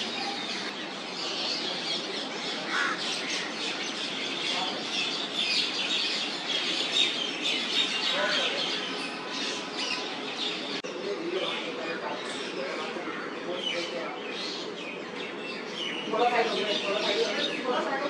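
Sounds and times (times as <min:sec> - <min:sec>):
birds chirping and calling: 0:00.0 - 0:18.0.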